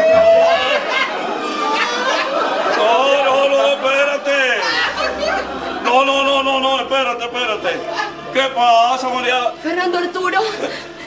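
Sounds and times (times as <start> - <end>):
indistinct voices murmuring: 0.0 - 11.0.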